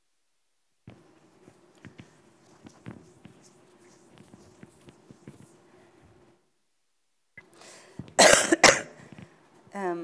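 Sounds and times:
person coughing: 8.0s - 9.1s.

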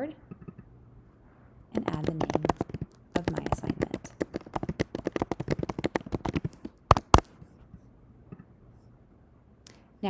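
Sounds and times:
fast typing on keyboard: 1.8s - 7.3s.

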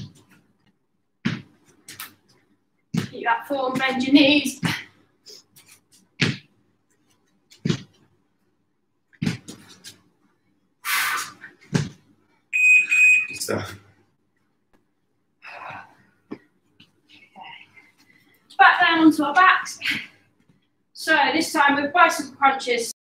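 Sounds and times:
dull thumps on gym mats: 6.2s - 6.6s, 11.7s - 12.1s
high electronic beep: 12.6s - 13.5s.

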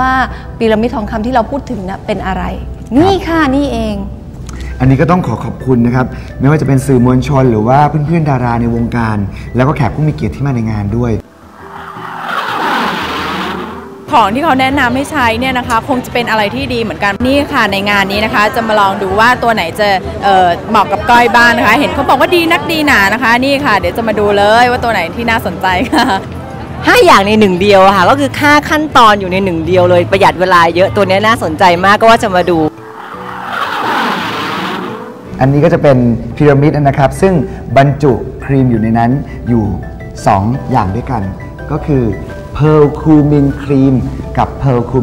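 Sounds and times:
whooshing sound effect: 11.2s - 14.1s, 32.7s - 35.3s
sustained music tones: 11.2s - 15.8s, 32.1s - 35.9s.

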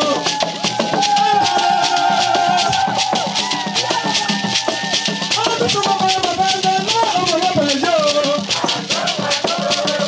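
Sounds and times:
hand rattles shaken: 0.0s - 10.0s.

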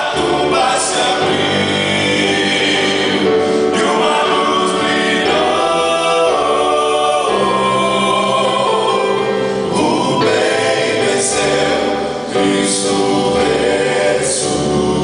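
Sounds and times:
keyboard accompaniment: 0.0s - 15.0s
male vocal group singing gospel: 0.0s - 15.0s.

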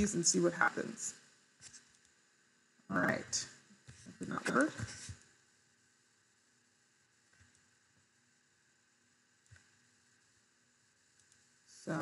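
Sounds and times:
small clicks: 11.1s - 11.5s.

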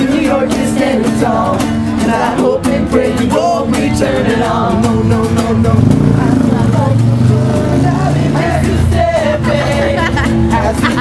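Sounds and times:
vehicle engine running: 0.1s - 11.0s
people talking: 6.0s - 7.7s, 9.2s - 11.0s.

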